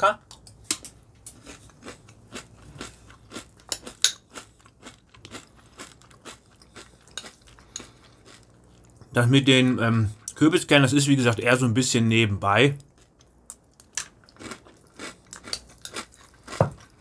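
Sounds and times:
chewing crunchy cereal: 0:01.2 - 0:10.4, 0:12.8 - 0:17.0.

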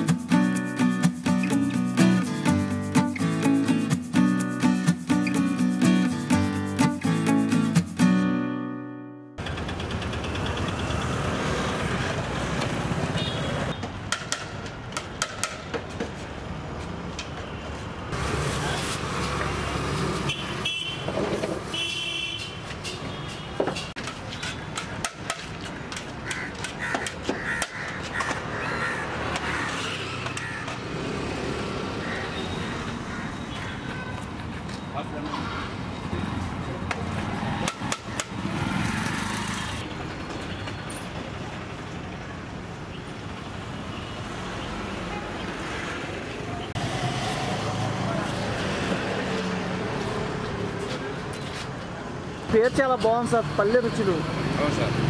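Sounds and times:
passing traffic: 0:00.0 - 0:55.0
street ambience: 0:00.0 - 0:55.0.

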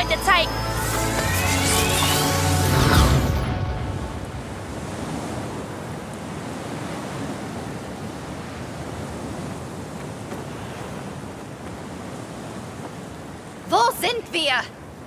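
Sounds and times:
steady wind: 0:00.0 - 0:15.0.

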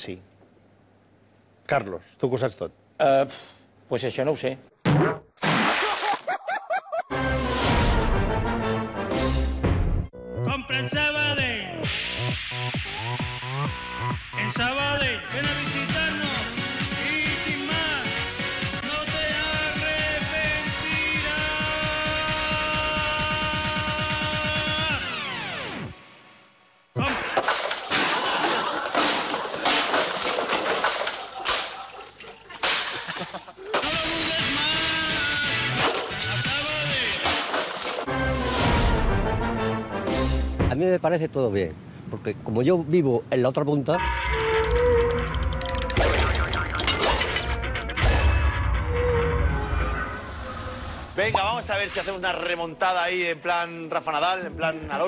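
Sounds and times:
whacks thumps and crashes: 0:27.0 - 0:32.0, 0:32.6 - 0:34.0, 0:35.8 - 0:36.4, 0:37.0 - 0:38.1
fast run of clicks: 0:44.3 - 0:46.6.

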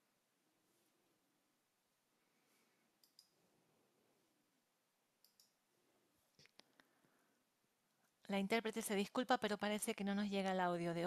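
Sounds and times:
faint sharp clicks: 0:03.0 - 0:03.4, 0:05.2 - 0:05.6.

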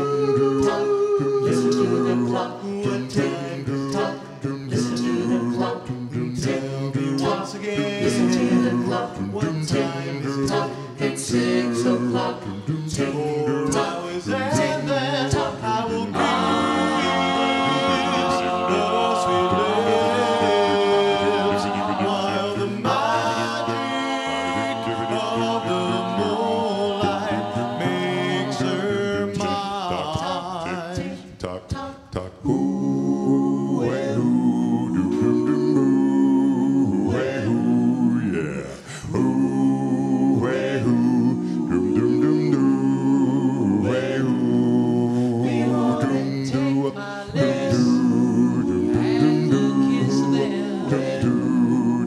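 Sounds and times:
a cappella group singing harmony: 0:00.0 - 0:52.0.

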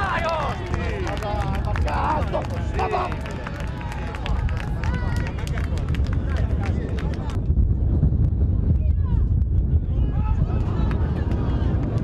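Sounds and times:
players shouting: 0:00.0 - 0:04.2
low rumble: 0:00.0 - 0:12.0.

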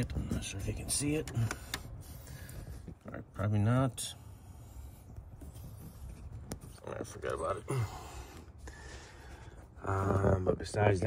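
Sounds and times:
camera rubbing and rustling: 0:00.0 - 0:03.2, 0:04.5 - 0:07.5.

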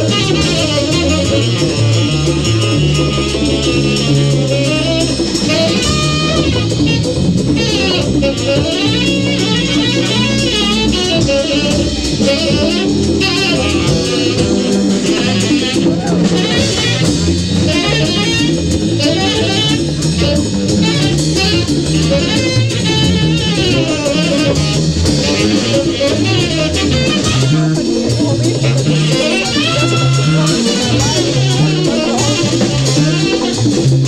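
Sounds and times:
jazz ensemble playing: 0:00.0 - 0:34.0.

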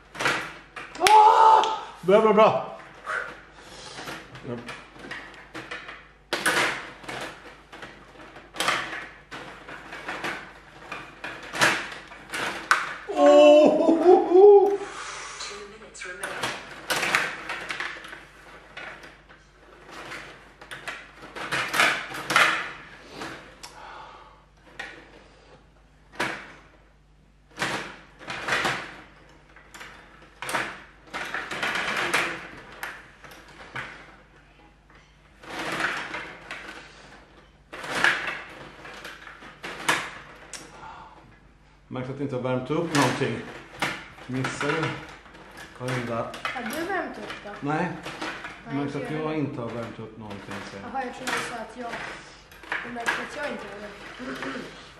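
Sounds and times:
person exclaiming: 0:01.0 - 0:02.0, 0:13.1 - 0:15.7
table hockey plastic clacks: 0:49.7 - 0:54.6.

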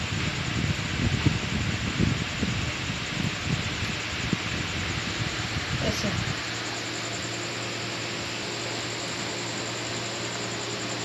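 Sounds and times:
constant low hum: 0:00.0 - 0:11.0
faint high whine: 0:00.0 - 0:11.0
steady background hiss: 0:00.0 - 0:11.0.

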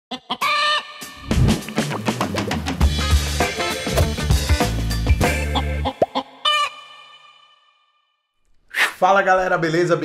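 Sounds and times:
chicken squawk: 0:00.1 - 0:01.0, 0:05.8 - 0:07.2
music with drums and bass: 0:01.1 - 0:05.8.

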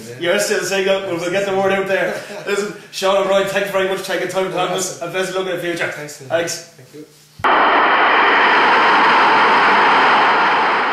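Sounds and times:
loud rushing noise: 0:07.4 - 0:10.9.

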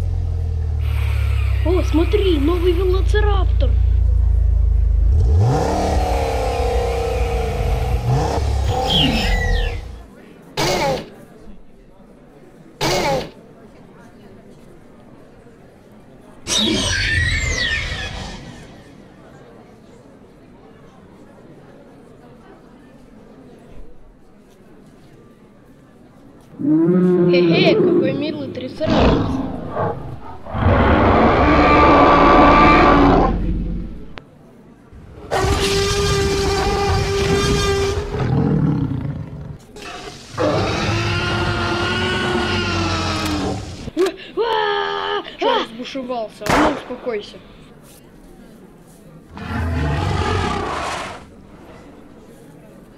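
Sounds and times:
dinosaur roars: 0:05.1 - 0:10.0, 0:26.6 - 0:34.2, 0:35.0 - 0:43.9, 0:49.3 - 0:51.8
shrill creature screech: 0:08.6 - 0:10.0, 0:16.5 - 0:18.9, 0:30.5 - 0:33.4, 0:35.3 - 0:38.3, 0:39.8 - 0:43.9, 0:49.4 - 0:51.3.

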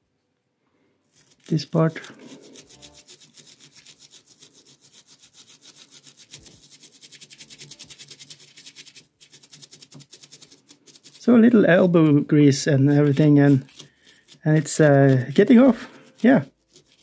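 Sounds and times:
brush scrubbing paint: 0:01.1 - 0:17.0.

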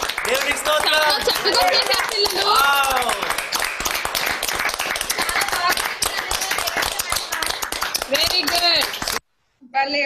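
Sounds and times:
people clapping: 0:00.0 - 0:09.3.

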